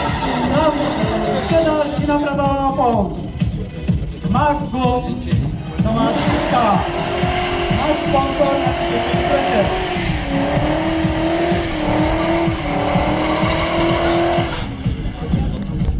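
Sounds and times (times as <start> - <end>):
car engine at high revs: 0.0 - 2.2, 5.9 - 15.2.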